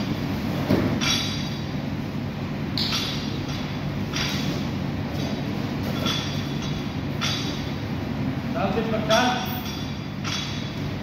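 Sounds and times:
low rumble of hall: 0:00.0 - 0:11.0.

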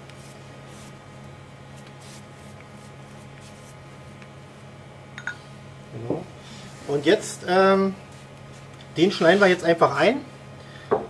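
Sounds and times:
pastry brush swishing on dough: 0:00.0 - 0:04.7, 0:08.0 - 0:09.6
steady low hum: 0:00.0 - 0:11.0.

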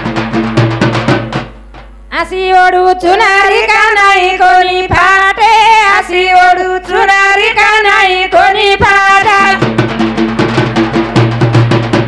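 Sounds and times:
woman singing: 0:02.1 - 0:09.6.

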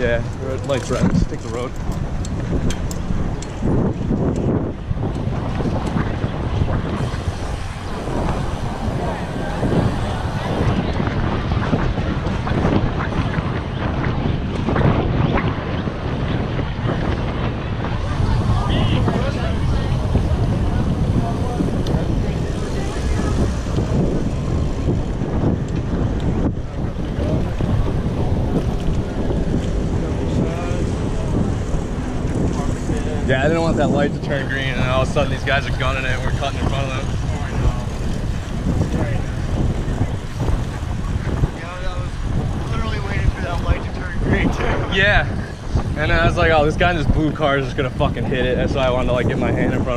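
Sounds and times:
street traffic: 0:00.0 - 0:49.9
wind buffeting microphone: 0:00.0 - 0:49.9.

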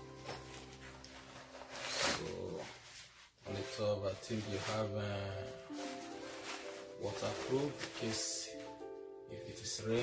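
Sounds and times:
backpack rustling: 0:00.0 - 0:08.9
soft background music: 0:00.0 - 0:10.0.

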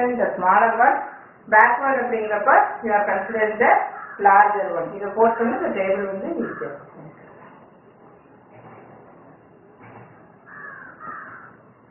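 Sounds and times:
faint room noise: 0:00.0 - 0:11.9.

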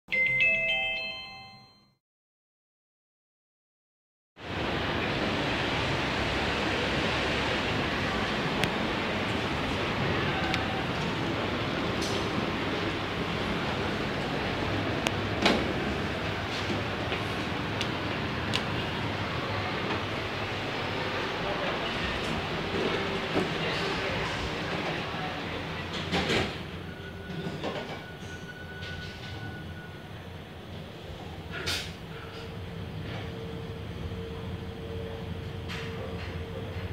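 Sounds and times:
elevator hum: 0:04.4 - 0:31.5, 0:32.1 - 0:36.9.

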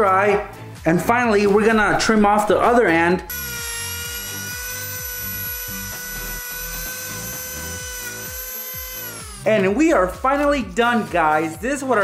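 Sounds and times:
rotary tool cutting plastic: 0:03.3 - 0:09.6.

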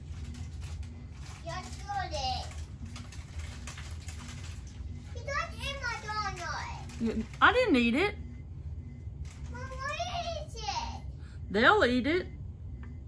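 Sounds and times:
steady low hum: 0:00.0 - 0:13.0
child speaking: 0:01.4 - 0:02.6, 0:05.1 - 0:07.0, 0:09.4 - 0:11.1.

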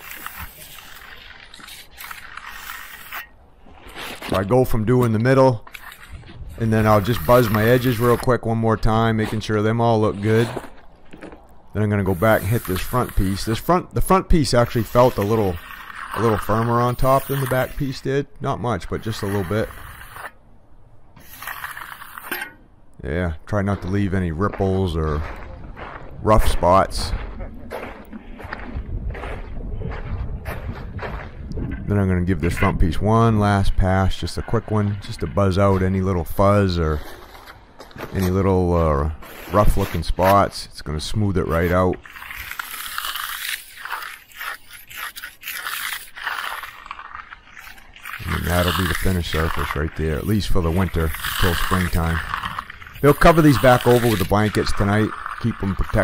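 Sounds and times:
steel edger scraping concrete: 0:00.0 - 0:10.7, 0:11.8 - 0:20.4, 0:21.2 - 0:22.6, 0:31.9 - 0:37.4, 0:39.2 - 0:56.0.

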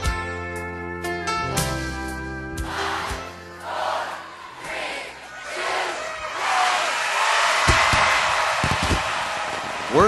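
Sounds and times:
crowd cheering and shouting: 0:02.6 - 0:10.0.

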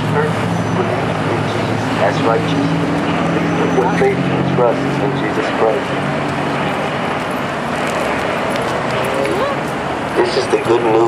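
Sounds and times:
city street traffic: 0:00.0 - 0:11.0.

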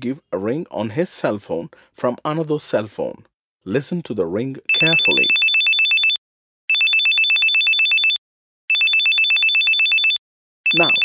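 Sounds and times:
mobile phone trill ringing: 0:04.7 - 0:11.0.

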